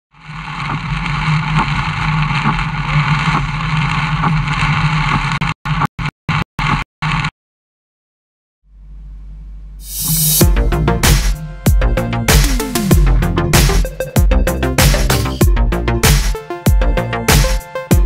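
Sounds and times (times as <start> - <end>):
low drone: 8.8 - 16.0.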